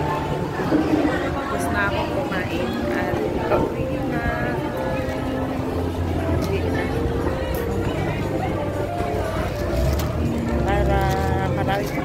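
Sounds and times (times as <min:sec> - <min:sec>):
vehicle engine humming: 0:00.0 - 0:12.0
voices of people: 0:00.0 - 0:12.0.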